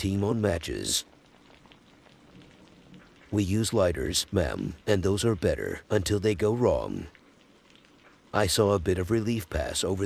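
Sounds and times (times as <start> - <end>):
steady hiss with light crackle: 0.0 - 10.0.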